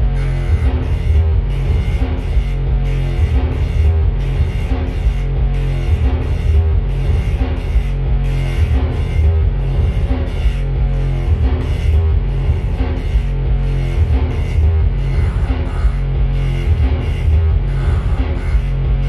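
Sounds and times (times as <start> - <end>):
live band with drums and electronics: 0.0 - 19.0.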